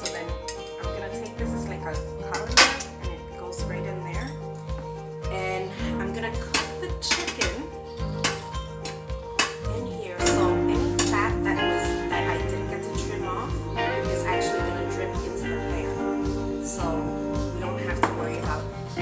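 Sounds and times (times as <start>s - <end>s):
background music: 0.0s - 19.0s
steel pots clanking: 6.4s - 11.3s.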